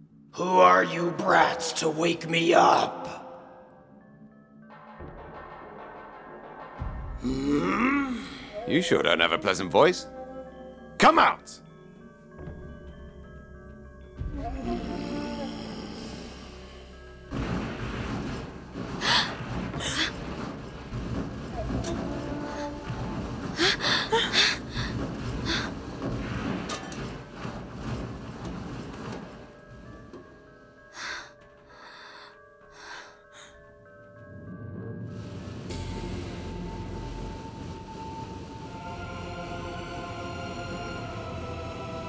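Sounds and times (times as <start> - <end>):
dramatic music: 0.4 - 42.0.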